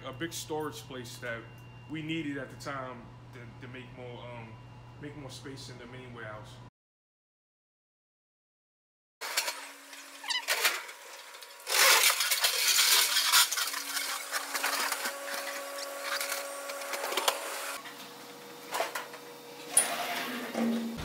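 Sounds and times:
electric pallet jack motor hum: 9.2s - 21.0s.

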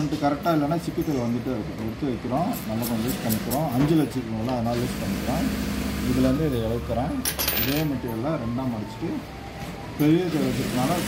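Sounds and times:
man talking: 0.0s - 9.3s.

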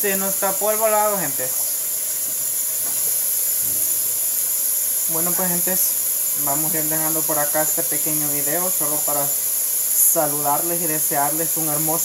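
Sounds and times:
tap water running into sink: 1.6s - 4.2s.

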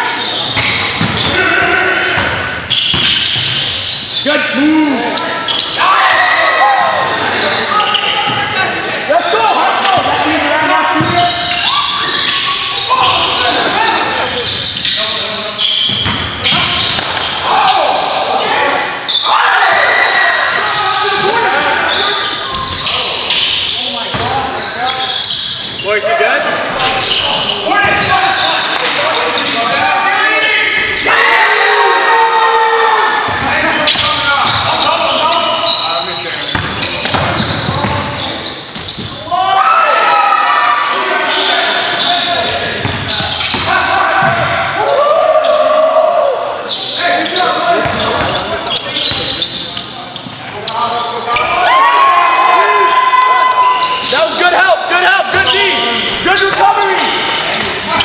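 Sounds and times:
players' voices: 0.0s - 58.0s
basketball bouncing on court: 0.6s - 1.4s, 2.2s - 3.7s, 11.0s - 11.5s, 15.8s - 17.3s, 36.4s - 39.2s, 42.8s - 44.6s, 47.7s - 48.4s.

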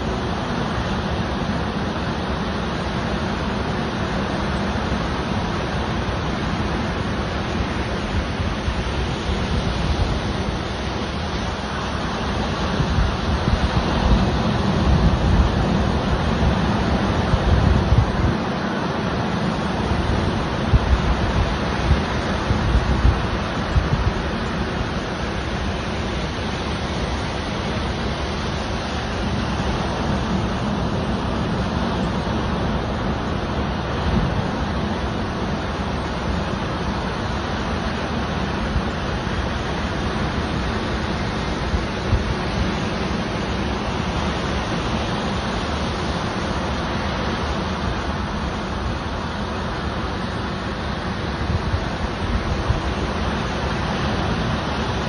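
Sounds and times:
ocean surf breaking: 0.0s - 55.0s
wind buffeting microphone: 7.2s - 55.0s.

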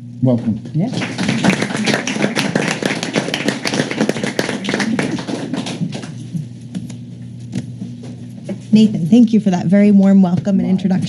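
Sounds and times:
small group applauding: 0.9s - 6.5s.

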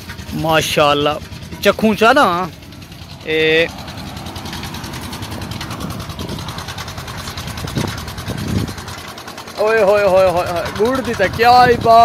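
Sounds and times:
engine running: 0.0s - 12.0s
man speaking: 3.2s - 3.7s.

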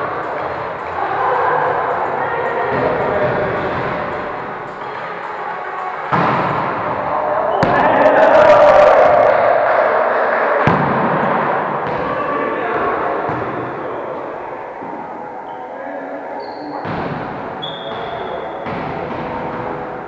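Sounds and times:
players' voices: 0.0s - 20.0s
volleyball being hit by hands: 10.6s - 11.2s.

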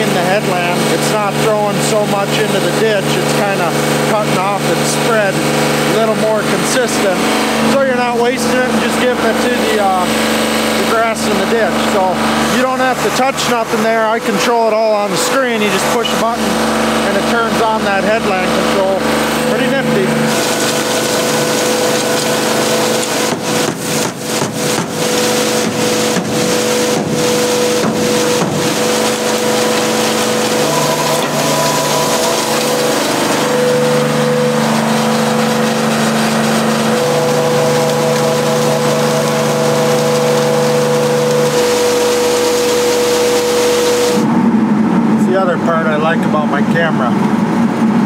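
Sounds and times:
engine running: 0.0s - 48.0s.

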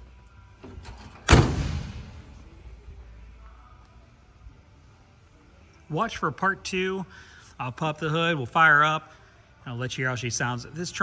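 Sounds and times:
car door slam: 1.2s - 2.3s.

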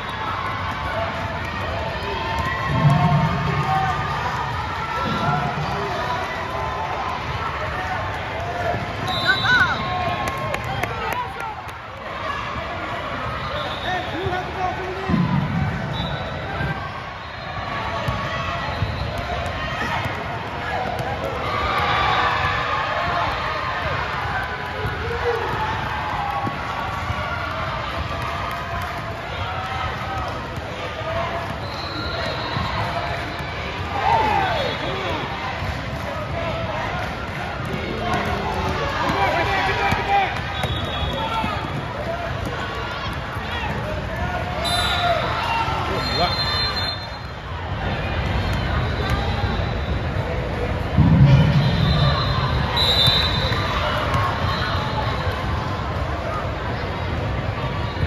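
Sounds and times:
crowd hubbub: 0.0s - 58.0s
sneakers squeaking: 31.3s - 33.5s, 37.6s - 47.4s
basketball bouncing on court: 37.4s - 44.4s.

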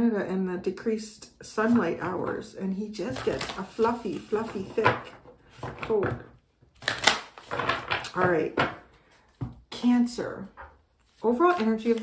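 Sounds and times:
cards being shuffled: 3.1s - 5.9s, 6.8s - 8.3s, 11.0s - 12.0s.

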